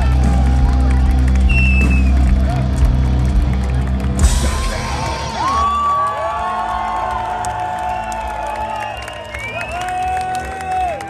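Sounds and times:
crowd whooping and cheering: 0.0 - 11.0.

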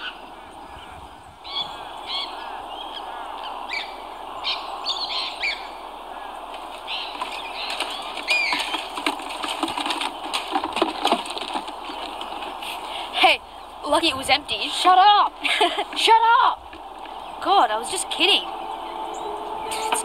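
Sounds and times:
birds chirping and calling: 0.0 - 20.0
steady background noise: 0.0 - 20.0.

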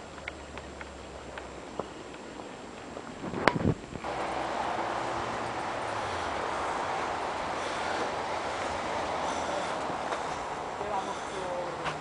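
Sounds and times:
running footsteps on dirt path: 0.0 - 12.0
wind buffeting microphone: 2.9 - 12.0.

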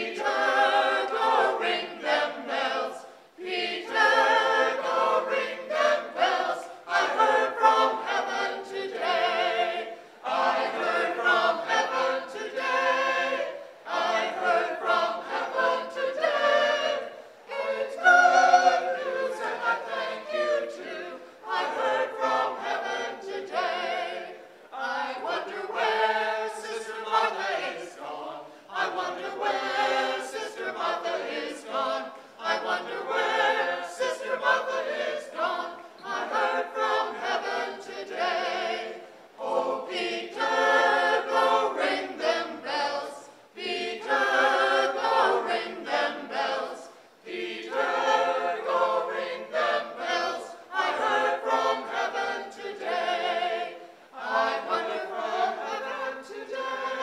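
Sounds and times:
mixed choir singing: 0.0 - 57.0.

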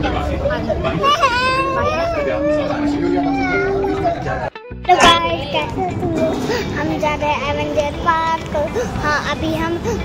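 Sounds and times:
background music: 0.9 - 10.0
child's voice: 1.0 - 4.2, 4.9 - 10.0.

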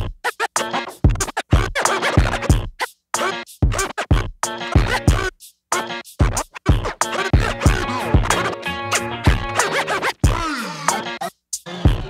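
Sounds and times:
drum beat with kick: 0.0 - 11.0
vinyl record scratching: 0.0 - 12.0.

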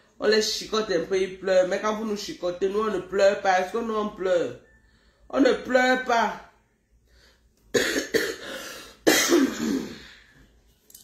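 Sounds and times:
woman coughing: 7.7 - 10.1.

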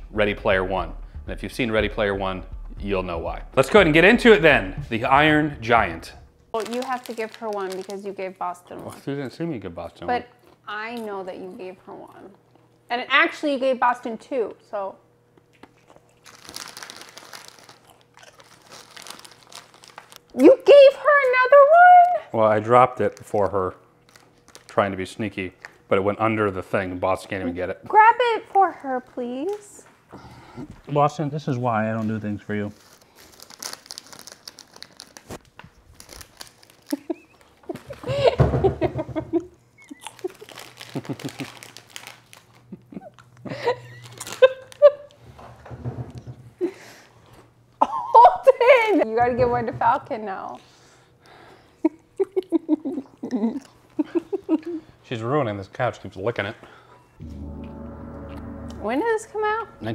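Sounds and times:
snack bag crinkling: 6.5 - 9.1, 15.4 - 20.7, 22.5 - 25.9, 32.4 - 38.0, 39.8 - 45.2
woman laughing: 36.8 - 41.6, 42.7 - 45.2, 47.8 - 49.1, 51.8 - 54.9.

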